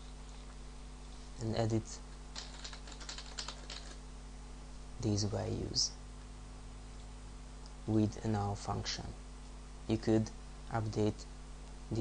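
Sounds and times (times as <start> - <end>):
low electrical hum: 0.0 - 12.0
keyboard typing: 2.4 - 4.0.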